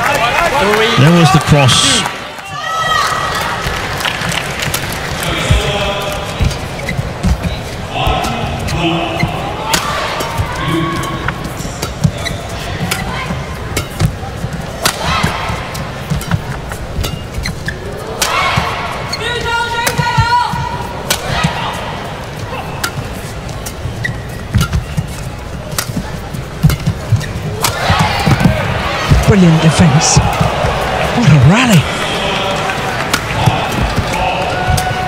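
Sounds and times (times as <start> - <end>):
arena crowd: 0.0 - 35.0
shoes squeaking on court: 4.3 - 35.0
rackets striking shuttlecock: 9.6 - 19.1, 19.8 - 21.8, 22.6 - 29.3, 33.0 - 35.0.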